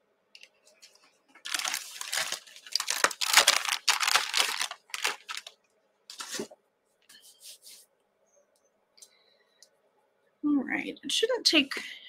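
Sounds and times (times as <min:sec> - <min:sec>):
crinkling and rustling: 0:00.4 - 0:06.6.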